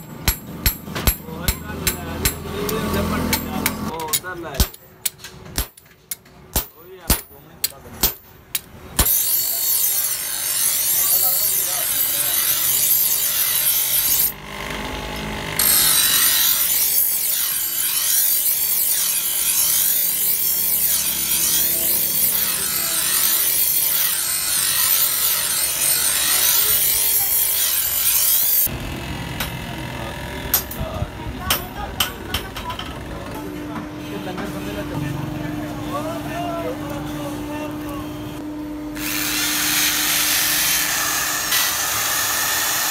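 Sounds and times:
grinding wheel on steel blade: 0:09.0 - 0:33.4, 0:39.0 - 0:42.9.

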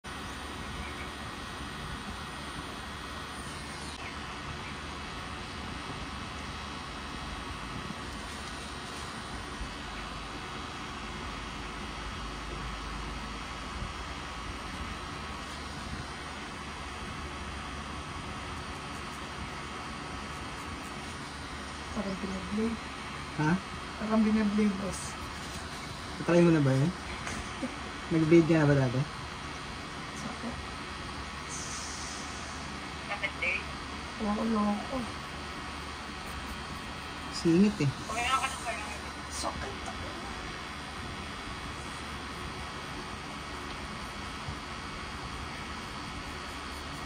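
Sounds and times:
tattoo machine humming: 0:00.0 - 0:47.0.

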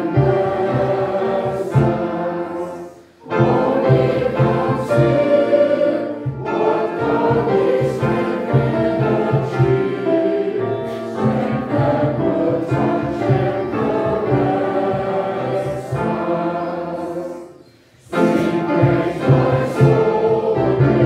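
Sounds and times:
congregation and choir singing hymn: 0:00.0 - 0:21.0.

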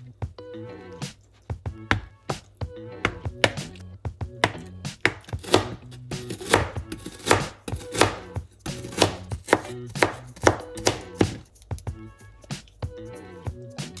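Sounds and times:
knife cutting tofu and garlic: 0:01.0 - 0:12.9.

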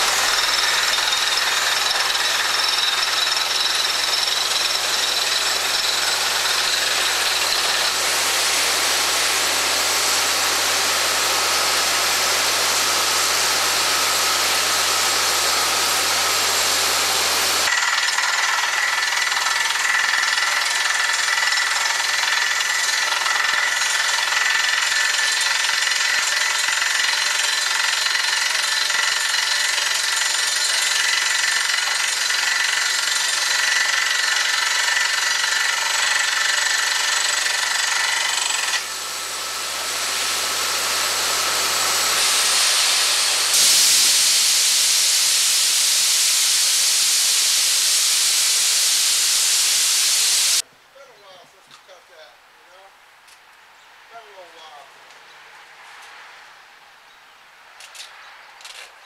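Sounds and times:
cuttings and spray blowing out: 0:00.0 - 0:17.8, 0:21.9 - 0:50.6
drilling rig running: 0:00.0 - 0:50.6.

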